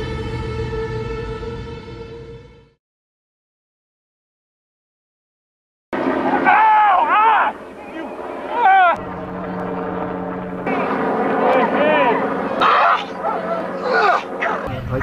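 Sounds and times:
people yelling and crying out: 6.2s - 9.0s, 11.6s - 14.7s.

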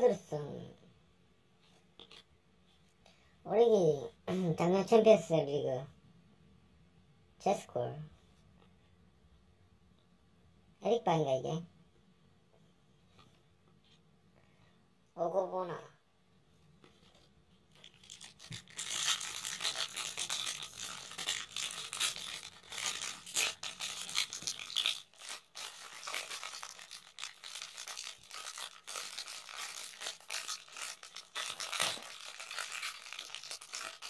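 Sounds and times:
foil wrapper crinkling: 17.7s - 34.0s.

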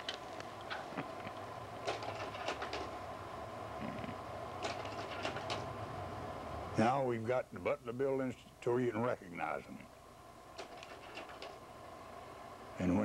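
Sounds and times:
film projector whirring: 0.0s - 13.0s.

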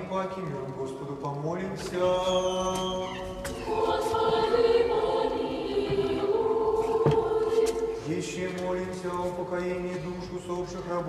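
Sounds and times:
church choir singing held chords: 2.6s - 11.0s.

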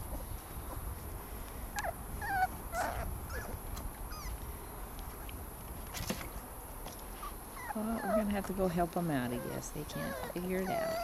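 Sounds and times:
puppies whimpering: 1.8s - 4.4s, 7.2s - 11.0s.

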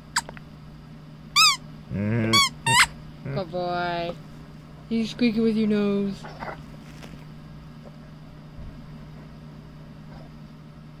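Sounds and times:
appliance electrical hum: 0.0s - 11.0s.

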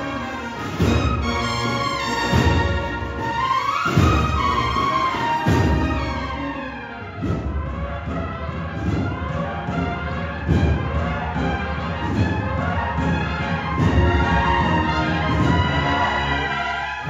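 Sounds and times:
brass band march chords: 0.0s - 17.0s.

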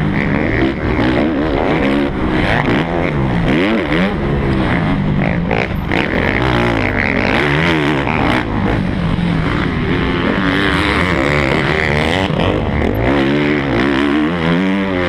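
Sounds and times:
dirt bike engine revving: 0.0s - 15.0s.

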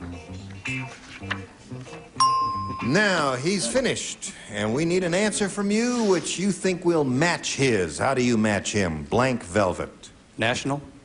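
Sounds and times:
quiz show waiting music: 0.0s - 4.0s
bright electronic ding: 2.2s - 3.1s
person speaking: 2.6s - 11.0s.

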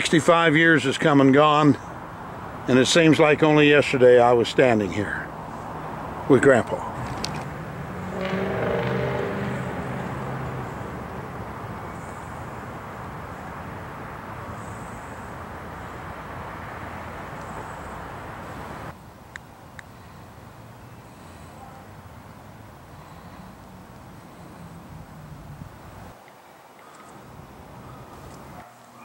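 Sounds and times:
steady traffic hum: 0.0s - 29.0s
vehicle passing by: 1.9s - 19.0s, 20.0s - 26.1s.

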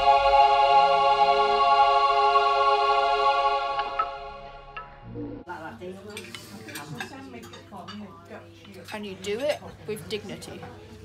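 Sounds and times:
cutlery and plates clinking: 6.0s - 9.8s.

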